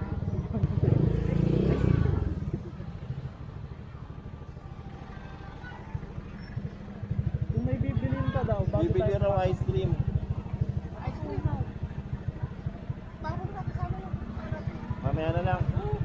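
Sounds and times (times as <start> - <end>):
motorcycle engine throbbing: 0.0 - 16.0.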